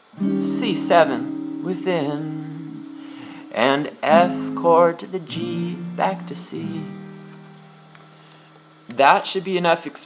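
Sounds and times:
acoustic guitar chord ringing: 0:00.1 - 0:08.8.

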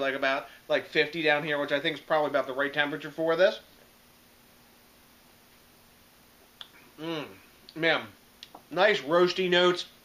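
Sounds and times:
lip smack: 0:06.5 - 0:06.8
person sipping beer: 0:06.6 - 0:07.8.

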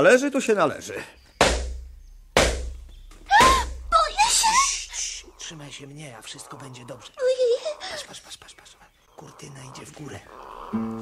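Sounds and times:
heavy struck blows ringing: 0:01.4 - 0:04.4.

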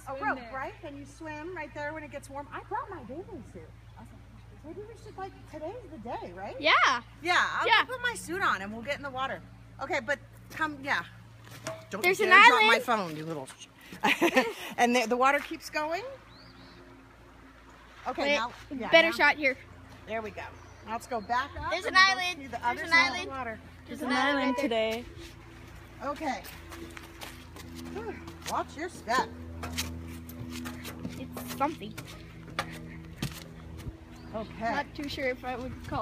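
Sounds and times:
footsteps: 0:24.9 - 0:34.2.

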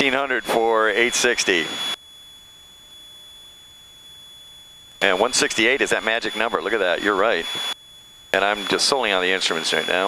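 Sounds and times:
faint high-pitched electronic whine: 0:00.0 - 0:10.0.

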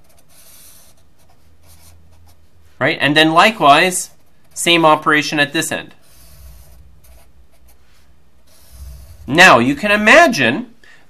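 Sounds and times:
marker scratching on paper: 0:00.0 - 0:02.5, 0:06.0 - 0:09.4.

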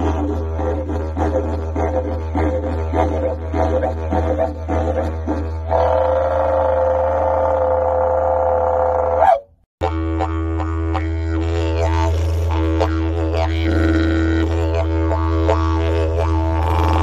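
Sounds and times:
didgeridoo drone: 0:00.0 - 0:17.0.

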